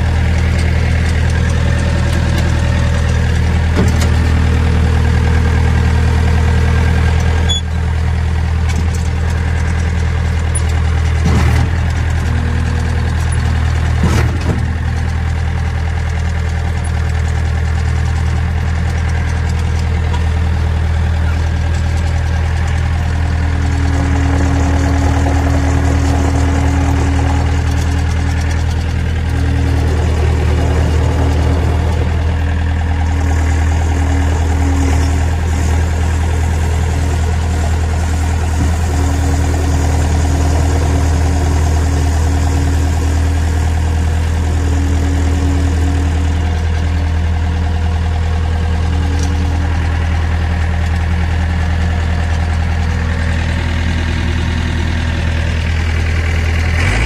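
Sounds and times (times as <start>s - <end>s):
diesel engine running: 0.0s - 57.0s
hydraulic whine: 19.2s - 57.0s.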